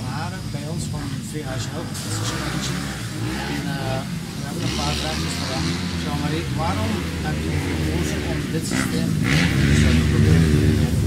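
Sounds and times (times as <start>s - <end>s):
dirt bike engine revving: 0.0s - 11.0s
steady low hum: 0.0s - 11.0s.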